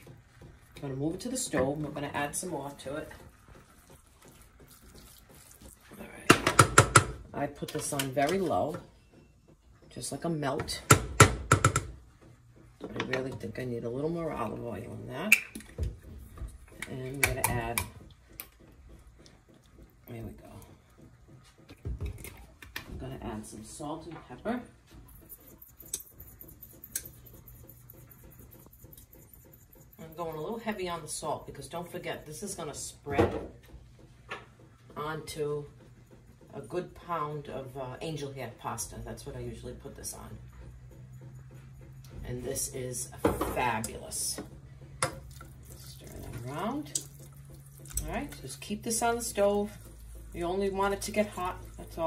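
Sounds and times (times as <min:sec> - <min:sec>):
spatula stirring in saucepan: 0:00.0 - 0:52.0.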